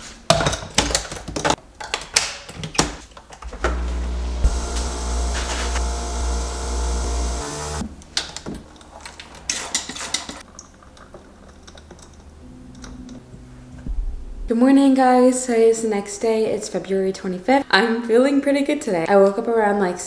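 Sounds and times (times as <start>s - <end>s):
coffee machine hum: 3.4s - 7.8s.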